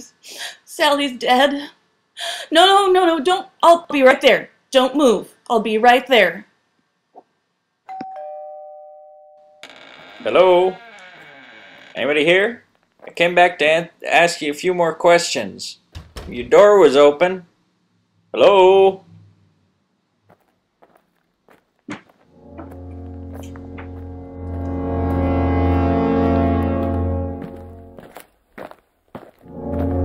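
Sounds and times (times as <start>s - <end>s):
two-tone doorbell chime: 7.9s - 9.7s
footsteps: 20.3s - 30.0s.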